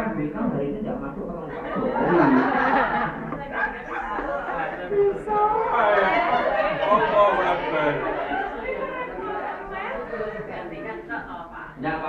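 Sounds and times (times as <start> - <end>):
overlapping classroom chatter: 0.0 - 12.0.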